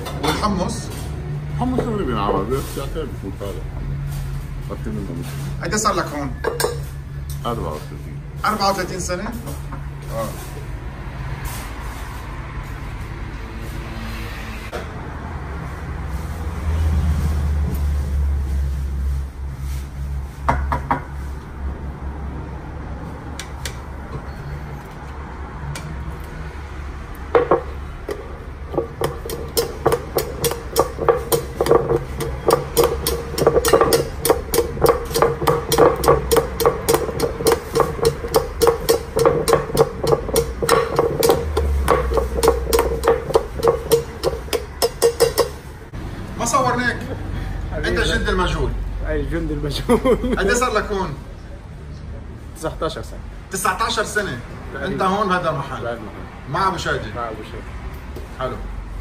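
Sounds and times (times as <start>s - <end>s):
metal ladle knocking in bowl: 27.4s - 45.6s.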